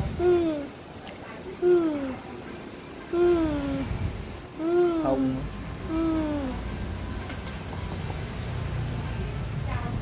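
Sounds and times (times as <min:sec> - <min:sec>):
low steady background hum: 0:00.0 - 0:10.0.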